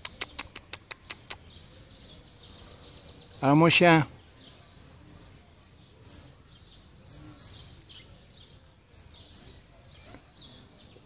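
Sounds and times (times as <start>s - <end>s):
faint outdoor background noise: 0.0s - 11.0s
small birds chirping: 0.0s - 11.0s.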